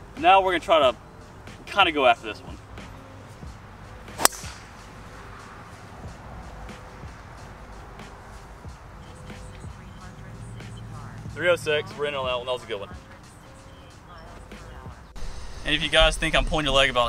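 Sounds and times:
golf club striking ball: 4.1 - 5.2.

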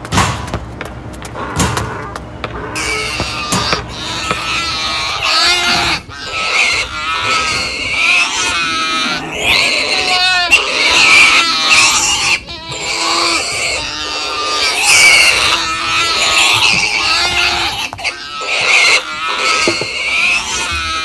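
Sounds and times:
animal grunting and squealing: 1.4 - 21.0.

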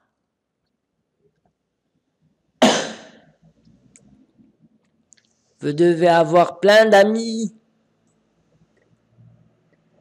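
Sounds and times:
person coughing: 2.6 - 3.2.

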